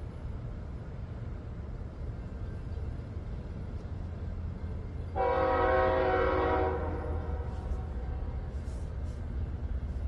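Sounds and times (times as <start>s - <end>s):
locomotive air horn blast: 5.2s - 7.8s.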